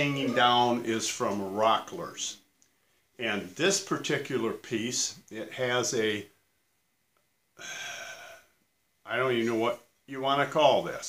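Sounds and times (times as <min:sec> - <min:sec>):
man sighing: 0:07.6 - 0:08.6.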